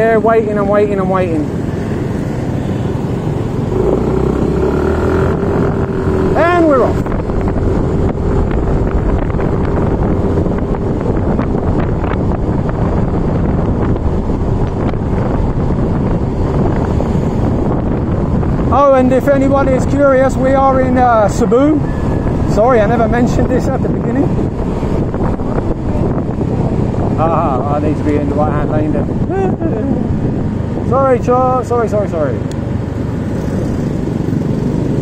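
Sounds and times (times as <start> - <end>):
road rumble: 0.0 - 35.0
wind rush on microphone: 0.0 - 35.0
scooter engine droning: 1.5 - 14.4.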